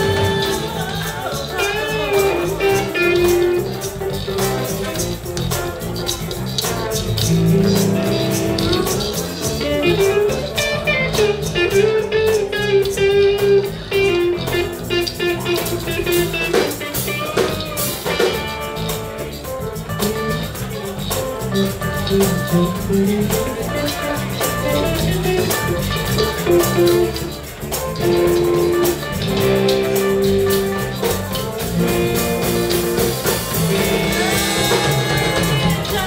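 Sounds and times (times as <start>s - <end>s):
electric guitar: 0.0s - 36.0s
funk band playing instrumental: 0.0s - 36.0s.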